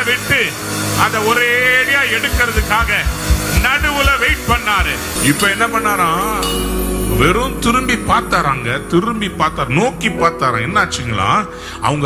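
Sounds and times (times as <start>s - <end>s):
keyboard pad with pulsing beat: 0.0s - 11.1s
man preaching into a microphone: 0.0s - 12.0s.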